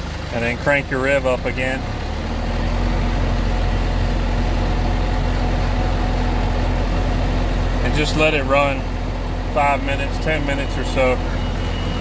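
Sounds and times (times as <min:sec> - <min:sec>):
diesel truck engine idling high: 0:00.0 - 0:12.0.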